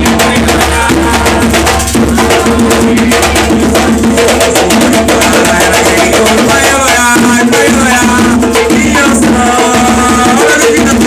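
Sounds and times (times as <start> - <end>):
hand drums fast rhythm: 0.0 - 11.0.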